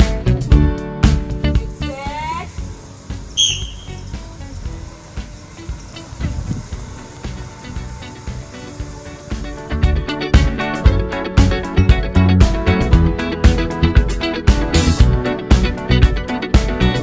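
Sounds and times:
high-pitched whistle blast: 3.4s - 4.2s.

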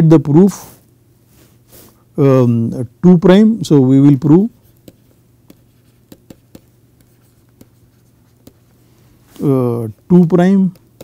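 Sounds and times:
steady low hum: 0.0s - 11.0s
stylus tapping on tablet screen: 4.6s - 8.7s, 10.6s - 11.0s.

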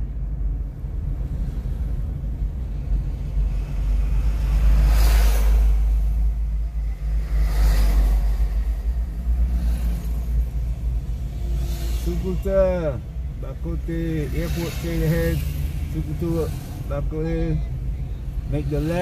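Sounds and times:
car engine and tyres rumbling: 0.0s - 19.0s.

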